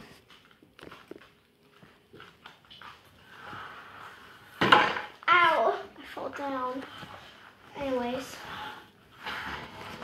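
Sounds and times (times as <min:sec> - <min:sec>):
bare feet on tiled floor: 0:00.0 - 0:10.0.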